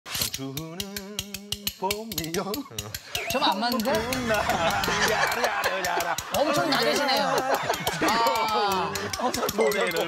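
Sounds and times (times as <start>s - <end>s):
metal tongs clacking: 0.1s - 10.0s.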